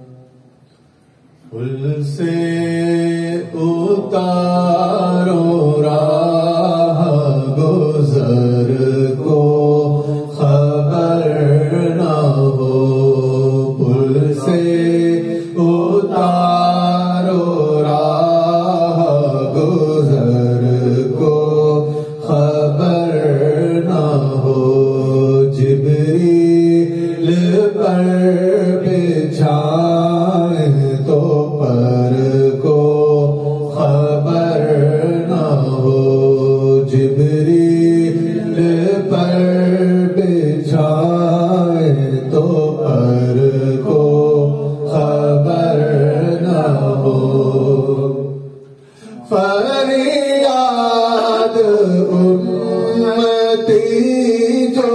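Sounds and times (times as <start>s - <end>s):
man singing through microphone: 1.5s - 48.4s, 49.1s - 54.9s
men chanting: 1.8s - 48.3s, 49.0s - 54.9s.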